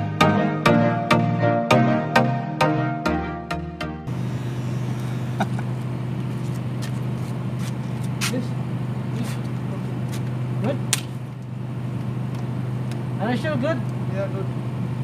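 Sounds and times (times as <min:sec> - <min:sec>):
low mechanical hum: 0:04.1 - 0:15.0.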